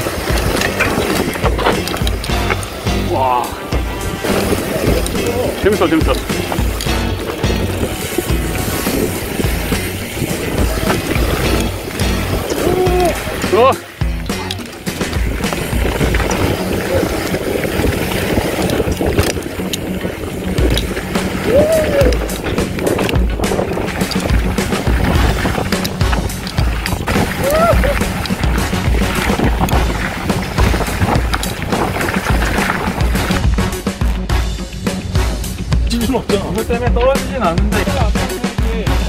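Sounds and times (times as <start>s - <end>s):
wind buffeting microphone: 0.0s - 33.8s
bike clicking and rattling: 0.0s - 39.0s
tyres rolling over dirt trail: 0.0s - 39.0s.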